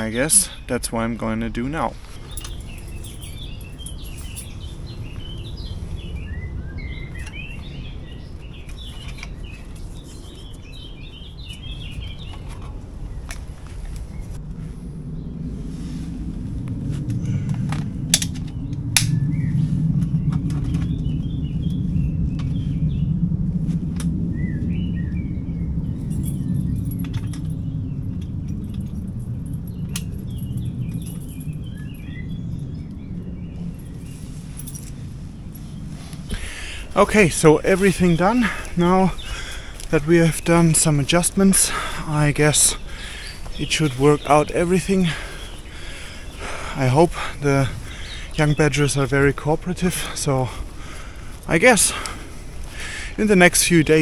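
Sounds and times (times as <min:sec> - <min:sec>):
birds chirping and singing: 0:00.0 - 0:54.0
steady low rumble: 0:00.0 - 0:54.0.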